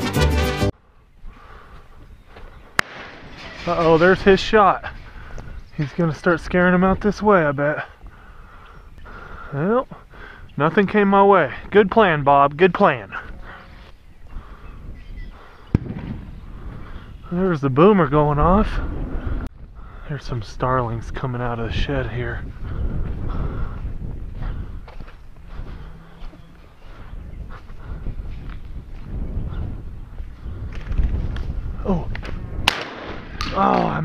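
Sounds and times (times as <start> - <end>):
wind on microphone: 1.1 - 12.3, 12.9 - 34.0
distant shotgun shot: 2.8 - 3.6, 15.7 - 16.4, 32.6 - 33.6
distant bird-scare cannon bang: 2.8 - 3.8, 15.7 - 16.4.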